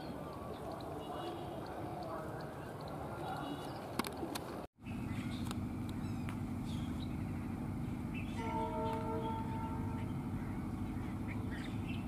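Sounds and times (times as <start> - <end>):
bird chirps: 0.0 - 12.0
low hum: 4.8 - 12.0.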